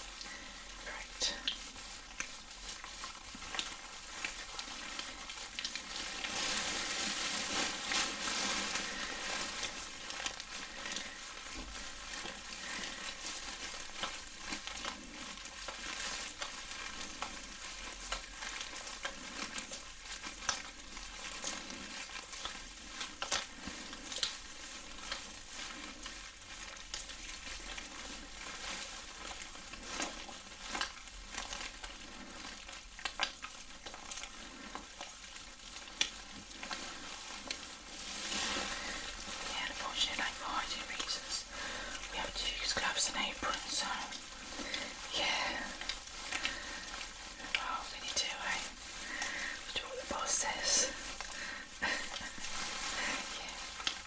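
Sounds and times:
crackle of tiny clicks: 0.0s - 49.8s
gloved hands rubbing and squelching: 0.0s - 54.0s
plastic crinkling: 0.0s - 54.0s.

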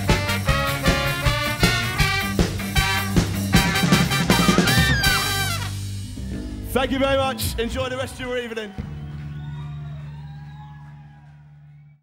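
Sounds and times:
low droning amplified band note: 5.3s - 9.2s.

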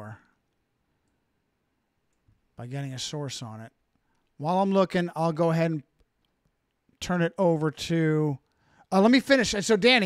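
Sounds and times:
man speaking: 0.0s - 0.3s, 2.6s - 3.8s, 4.4s - 5.9s, 7.0s - 10.0s.

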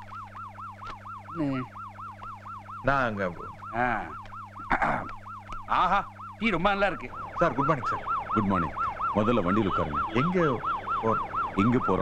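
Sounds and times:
electronic siren-like warble: 0.0s - 12.0s.

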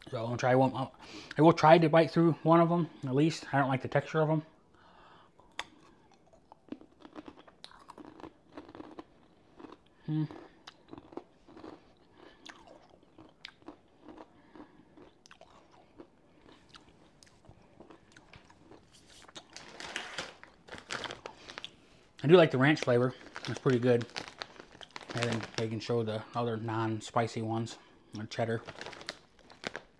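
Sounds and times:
chewing crunchy chips: 5.3s - 26.4s, 27.8s - 29.9s
person humming: 10.0s - 10.4s
plastic bag crinkling: 17.8s - 26.1s, 28.3s - 29.9s.

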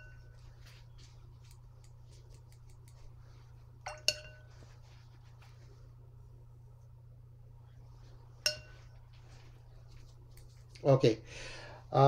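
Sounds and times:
low hum: 0.0s - 11.9s.

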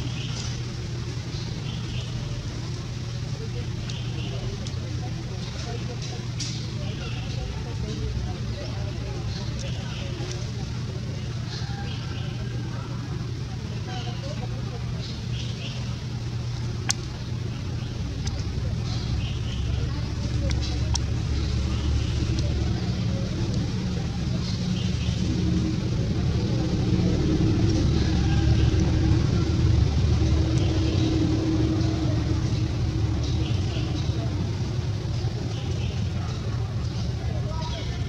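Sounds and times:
low rumbling: 0.0s - 38.0s
steady hum: 0.0s - 38.0s.

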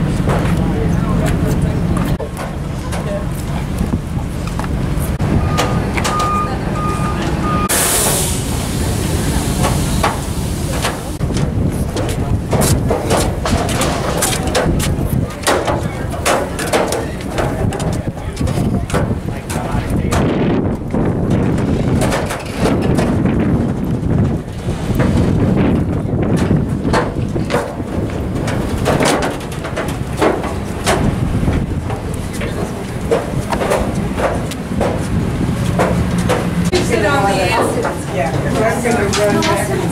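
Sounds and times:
footsteps on pier: 0.0s - 6.4s, 9.6s - 39.9s
crowd chatter: 0.0s - 39.9s
brief hiss: 7.7s - 10.8s.

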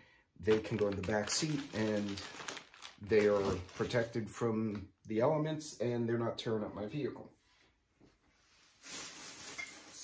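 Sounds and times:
hiss of rustling noise: 8.3s - 10.0s.

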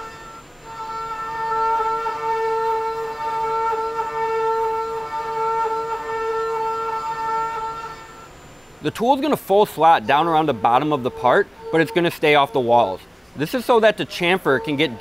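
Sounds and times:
milling machine cutting metal: 0.0s - 15.0s.

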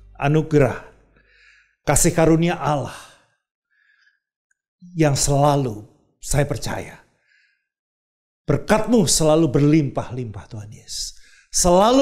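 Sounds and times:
man speaking a prayer: 0.0s - 1.0s, 1.9s - 3.2s, 4.8s - 7.1s, 8.5s - 12.0s
soft breath: 1.1s - 1.8s, 7.2s - 7.7s.

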